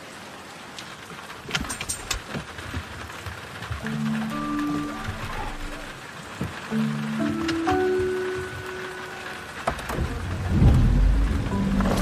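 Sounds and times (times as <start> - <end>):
steady rain: 0.0 - 12.0
deep rumble: 10.0 - 12.0.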